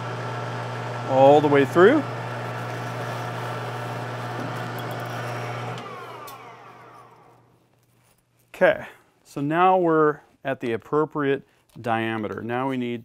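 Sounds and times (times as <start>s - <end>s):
lathe spindle whine: 0.0s - 7.4s.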